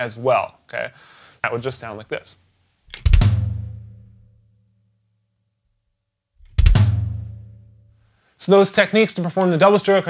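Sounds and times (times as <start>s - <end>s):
bass drum drag and kick: 3.0s - 4.2s, 6.4s - 7.9s.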